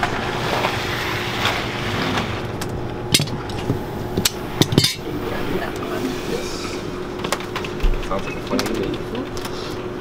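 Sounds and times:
electric fan humming: 0.0s - 10.0s
workshop machinery hum: 0.0s - 10.0s.

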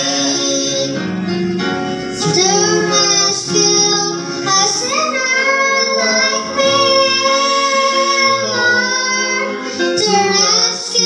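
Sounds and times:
instrumental accompaniment: 0.0s - 11.0s
girl singing gospel song: 2.1s - 11.0s.

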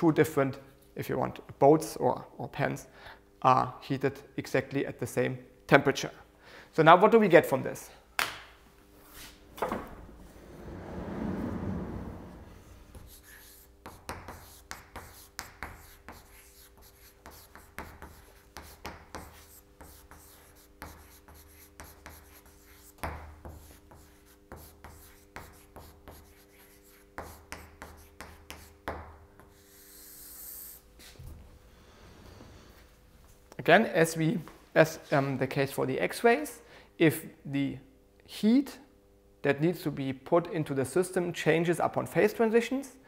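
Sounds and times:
chalkboard panel sliding scrape: 10.1s - 13.6s
chalk writing on blackboard: 12.9s - 31.2s.

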